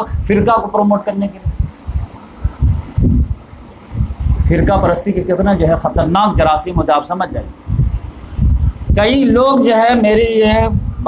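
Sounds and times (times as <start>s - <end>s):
faint low rumble: 0.0s - 11.0s
muffled thumps on microphone: 1.4s - 5.0s, 7.7s - 9.1s.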